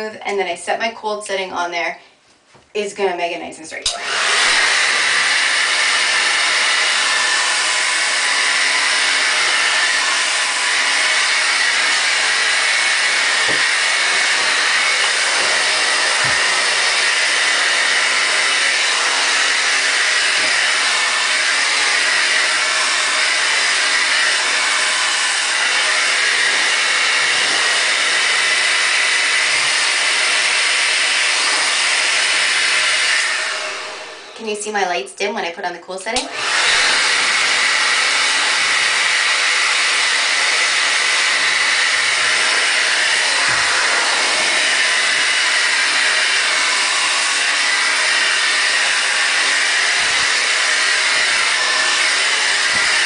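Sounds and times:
blow dryer running: 3.8s - 34.7s, 36.2s - 53.0s.

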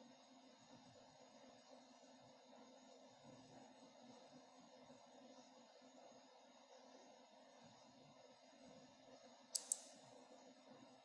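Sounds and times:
faint background noise: 0.0s - 11.0s
sharp clicks: 9.5s - 9.9s.

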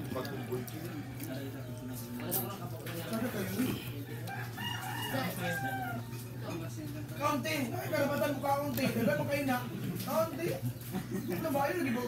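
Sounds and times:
rooster crowing: 4.1s - 6.3s.

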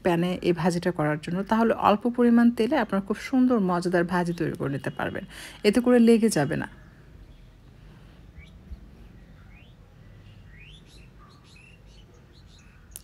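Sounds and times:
low steady hum: 0.0s - 13.0s
faint bird chirps: 6.4s - 13.0s.

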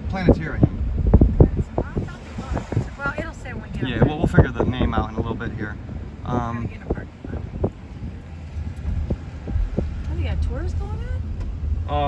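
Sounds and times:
vehicle rumble from inside cabin: 0.0s - 12.0s.

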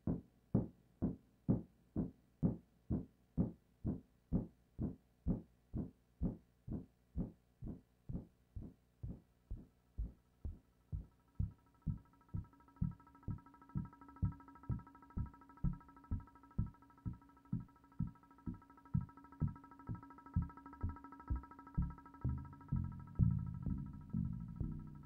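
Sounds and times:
drum machine kick drum: 0.0s - 25.0s.

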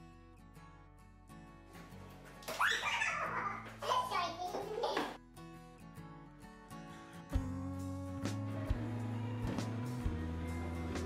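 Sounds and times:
guitar music: 3.1s - 11.0s.

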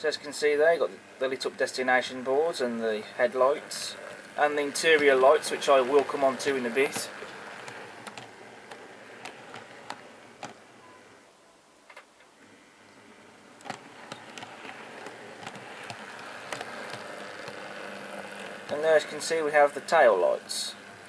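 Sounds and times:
model train running: 0.0s - 10.8s, 13.0s - 21.0s
wheels ticking on rails: 2.3s - 10.6s.

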